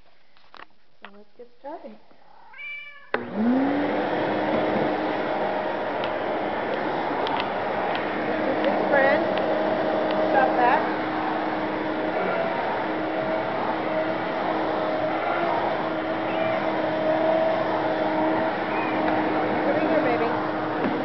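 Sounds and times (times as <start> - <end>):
cat meowing: 2.2 - 3.2, 15.2 - 17.0, 18.7 - 19.2
vacuum cleaner running: 3.1 - 21.0.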